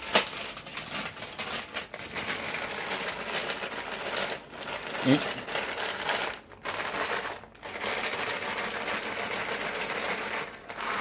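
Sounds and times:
plastic packet rustling: 0:00.0 - 0:11.0.

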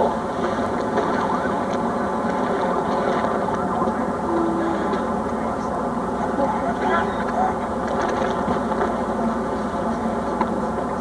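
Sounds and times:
steady rushing noise: 0:00.0 - 0:11.0
faint indistinct voices: 0:00.9 - 0:11.0.

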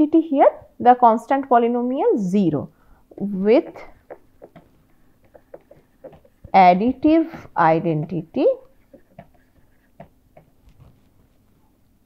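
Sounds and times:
stylus tapping on a tablet: 0:04.1 - 0:06.6, 0:08.9 - 0:10.6.

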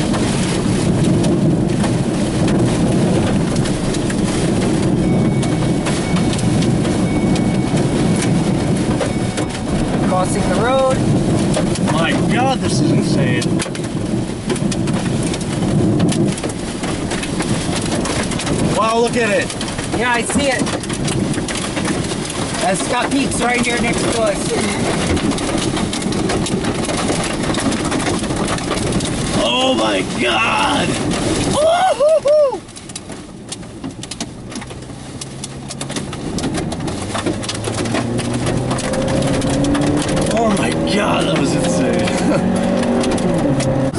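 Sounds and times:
engine and road hum: 0:00.0 - 0:43.9
heavy rain and wind on car: 0:00.0 - 0:43.9
raindrops ticking on windshield: 0:00.0 - 0:43.9.

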